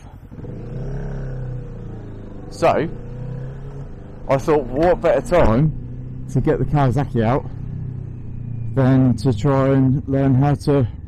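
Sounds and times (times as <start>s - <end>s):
motorcycle engine: 0.3s - 11.0s.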